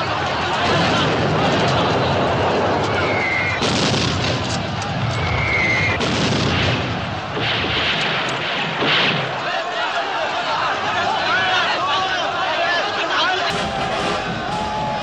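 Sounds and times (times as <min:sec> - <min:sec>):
crowd shouting: 0:00.0 - 0:15.0
booming explosions: 0:00.6 - 0:09.5, 0:13.5 - 0:15.0
rifle fire: 0:03.6 - 0:04.8, 0:05.9 - 0:09.4.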